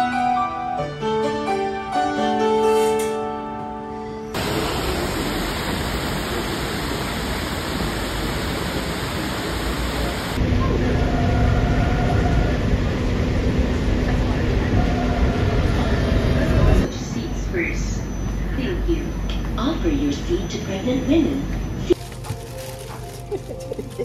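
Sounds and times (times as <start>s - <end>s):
heavy rain pouring: 4.4s - 10.4s
train rumbling inside carriage: 4.4s - 24.0s.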